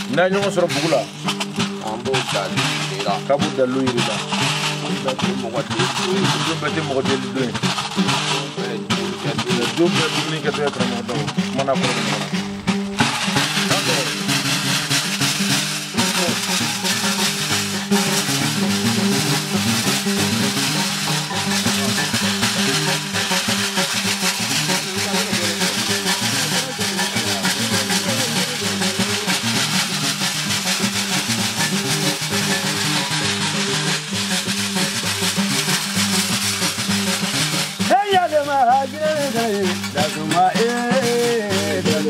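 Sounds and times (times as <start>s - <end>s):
harp-lute repeating pattern: 0.0s - 42.0s
percussion: 0.0s - 42.0s.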